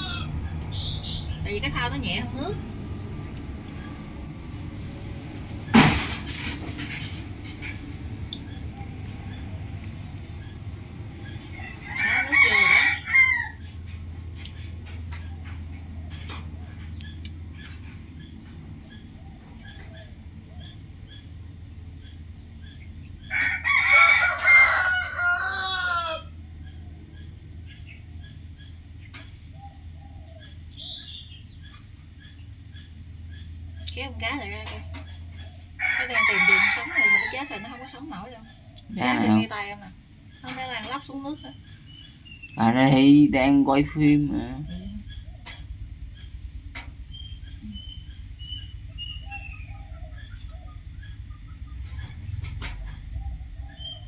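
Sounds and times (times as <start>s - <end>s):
rooster crowing: 0.0s - 1.9s, 7.6s - 14.0s, 23.2s - 28.3s, 34.7s - 39.6s, 47.1s - 54.0s
low rumble: 0.0s - 11.8s
faint chirps: 0.0s - 23.4s, 26.3s - 54.0s.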